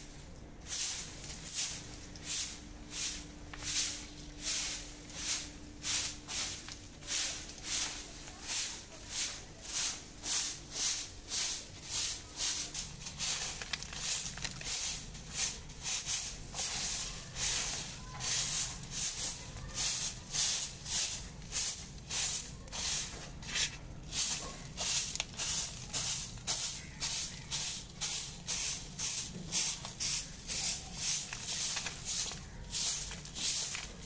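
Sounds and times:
broom sweeping leaves on concrete: 0:00.0 - 0:34.0.

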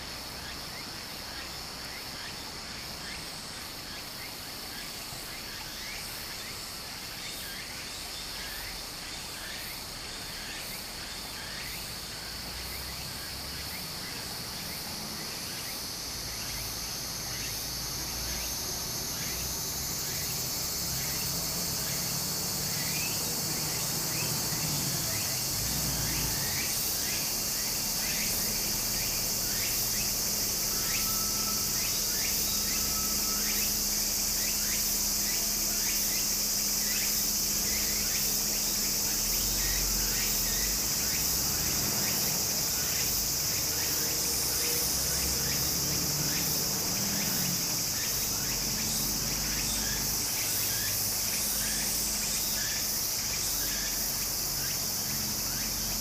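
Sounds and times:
cicadas singing: 0:00.0 - 0:56.0.

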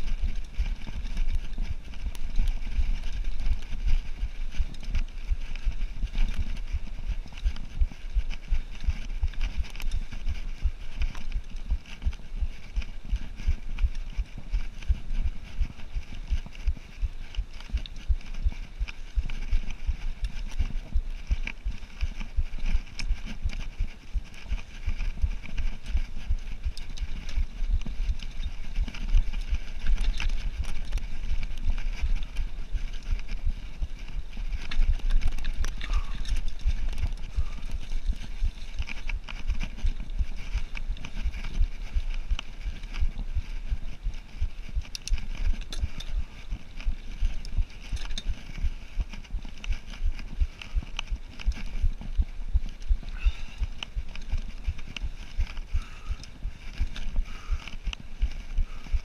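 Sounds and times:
bike tyre rumble and frame rattle: 0:00.0 - 0:59.0
low thumps from rough ground: 0:00.0 - 0:59.0
wind noise on microphone: 0:00.0 - 0:59.0.

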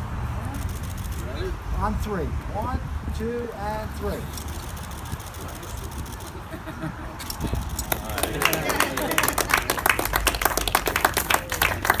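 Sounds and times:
people applauding: 0:07.4 - 0:12.0.

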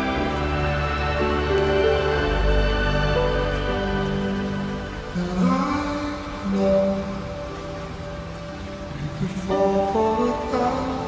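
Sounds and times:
slowed reverb-heavy song: 0:00.0 - 0:11.0
steady rain: 0:00.0 - 0:11.0.

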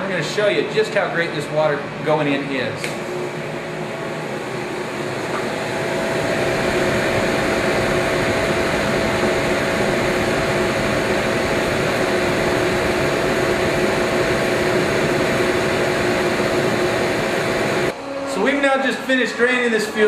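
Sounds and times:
steady hum: 0:00.0 - 0:20.0.

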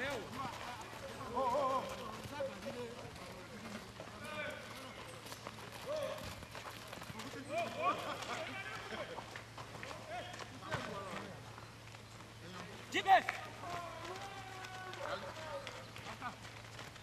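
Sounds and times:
running footsteps on dirt: 0:00.0 - 0:17.0
players shouting: 0:12.8 - 0:15.8.

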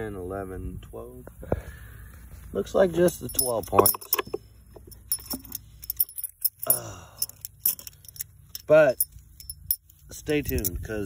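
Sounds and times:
metal washers clinking: 0:03.0 - 0:11.0.

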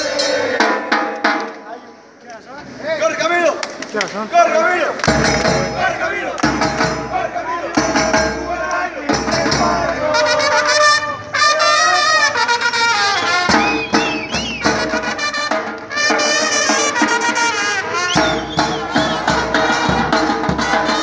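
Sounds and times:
brass band playing: 0:00.0 - 0:01.1, 0:05.0 - 0:21.0.

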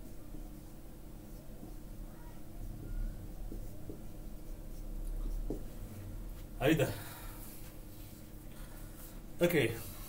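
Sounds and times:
low electrical hum: 0:00.0 - 0:10.0
marker scratching on whiteboard: 0:00.5 - 0:05.8.

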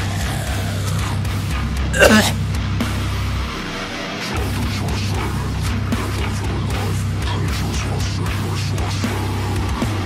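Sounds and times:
heavy death metal music: 0:00.0 - 0:10.0.

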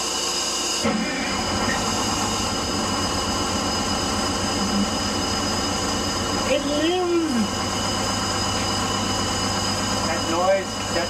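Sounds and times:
diesel engine cranking and idling: 0:00.0 - 0:11.0.

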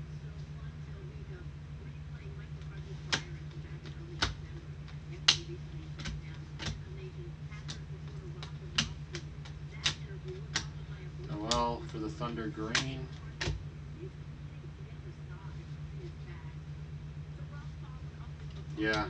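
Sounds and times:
low hum: 0:00.0 - 0:19.0
cards clicking against stack: 0:11.3 - 0:11.7, 0:12.6 - 0:13.6.

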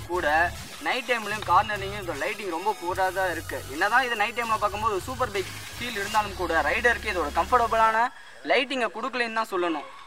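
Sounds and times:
low background music: 0:00.0 - 0:08.0
man speaking: 0:00.0 - 0:09.9.

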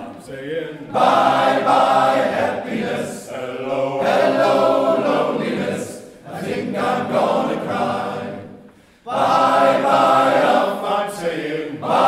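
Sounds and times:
men's choir singing: 0:00.0 - 0:12.0.

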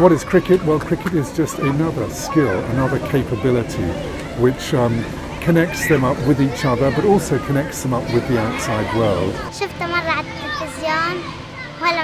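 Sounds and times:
girl talking: 0:09.4 - 0:12.0.

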